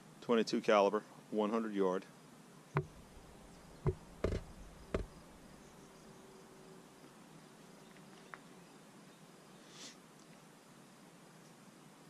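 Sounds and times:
faint steady hum: 1.1 - 12.0
short sharp knocks: 2.8 - 5.5.

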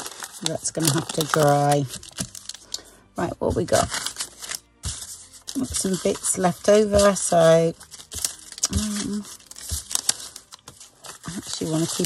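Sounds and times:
paper rustling and crinkling: 0.0 - 2.9, 3.5 - 12.0.

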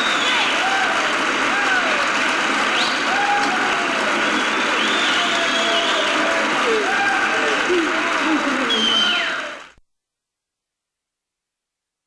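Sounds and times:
background noise: 0.0 - 12.0
person speaking: 6.5 - 9.6.

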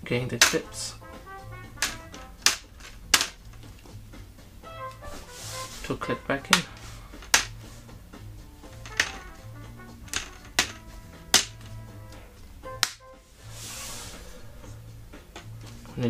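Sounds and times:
background music: 0.0 - 16.0
plastic clips snapping: 0.4 - 0.7, 1.8 - 3.9, 7.2 - 7.6, 8.8 - 9.4, 10.0 - 11.8, 12.8 - 13.0
soft rustle: 5.0 - 6.0, 13.4 - 14.5.

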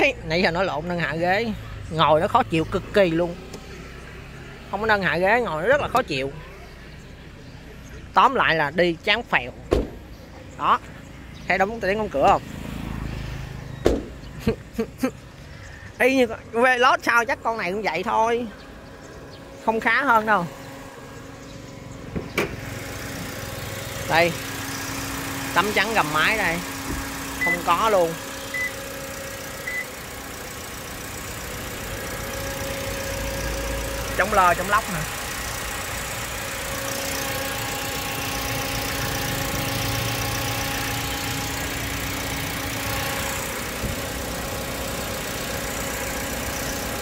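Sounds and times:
car engine idling: 0.0 - 47.0.

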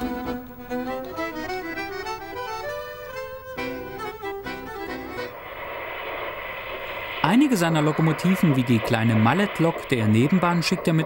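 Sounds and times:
violin music: 0.0 - 5.4
steady hiss: 0.0 - 11.0
faint high whine: 2.8 - 11.0.

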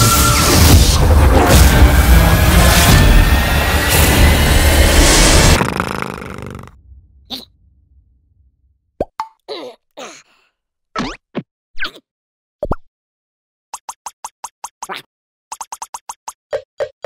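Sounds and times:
dramatic cartoon effect: 0.0 - 6.7.

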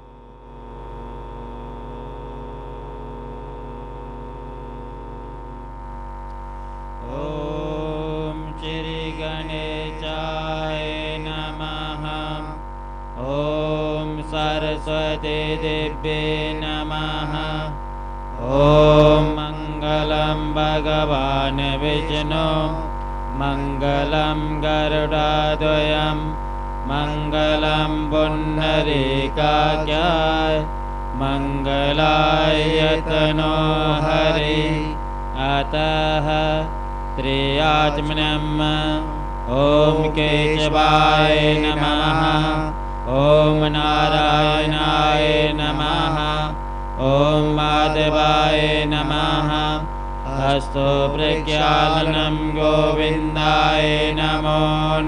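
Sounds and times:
person chanting a mantra: 0.0 - 6.0, 6.9 - 55.0
steady hum: 0.0 - 55.0.

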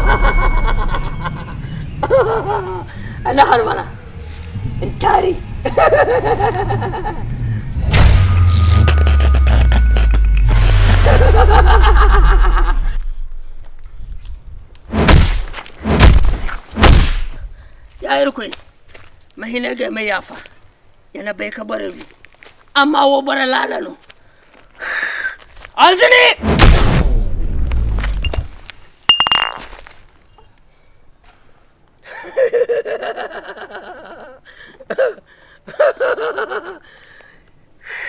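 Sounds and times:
loud low rumble: 0.0 - 13.6
warbling tone: 7.8 - 11.9
sharp glassy clink: 29.1 - 29.6.

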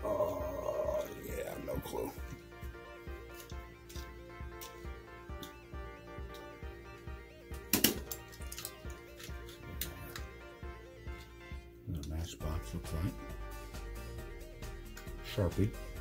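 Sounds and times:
background music: 0.0 - 16.0.

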